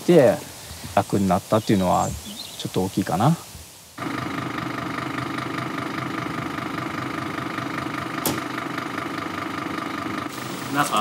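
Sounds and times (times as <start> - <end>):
diesel engine idling: 4.0 - 11.0.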